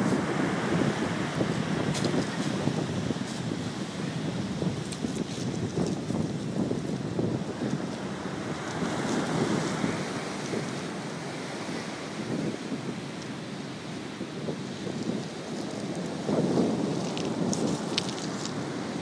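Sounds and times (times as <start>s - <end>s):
surf washing on beach: 0.0s - 19.0s
wind buffeting the microphone: 0.0s - 19.0s.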